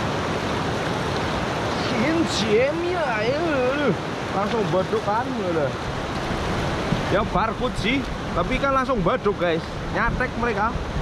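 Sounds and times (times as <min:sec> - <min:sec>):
river rushing over rocks: 0:00.0 - 0:11.0.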